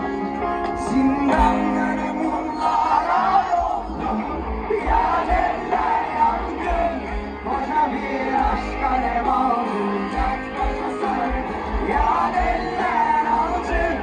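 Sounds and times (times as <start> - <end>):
person singing: 0.0 - 3.3
live rock band playing: 0.0 - 14.0
crowd cheering: 1.4 - 14.0.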